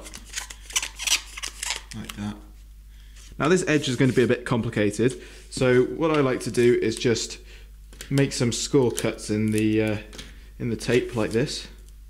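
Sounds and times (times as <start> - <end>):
tape scraping and crinkling: 0.0 - 2.2.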